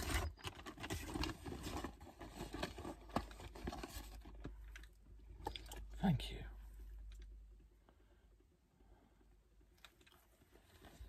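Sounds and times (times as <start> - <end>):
paper bag crinkling: 0.0 - 4.4.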